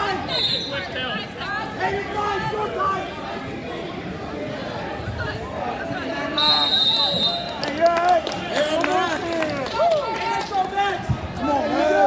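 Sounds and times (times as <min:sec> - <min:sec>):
spectators shouting and cheering: 0:00.0 - 0:03.2, 0:06.1 - 0:12.0.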